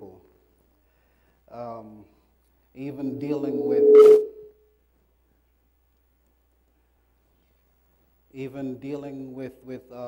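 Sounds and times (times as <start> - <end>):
faint low hum: 2.5 - 6.2
man's amplified voice: 2.8 - 4.0.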